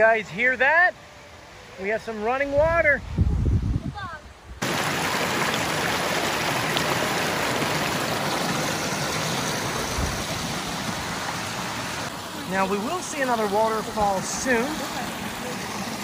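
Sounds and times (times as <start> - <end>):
stream rushing over rocks: 4.6 - 16.0.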